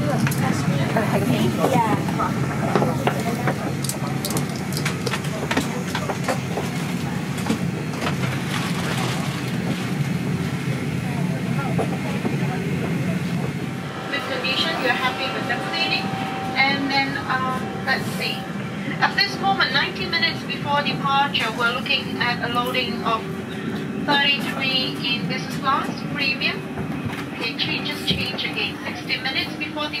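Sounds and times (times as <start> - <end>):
indistinct voices talking: 0.0 - 30.0.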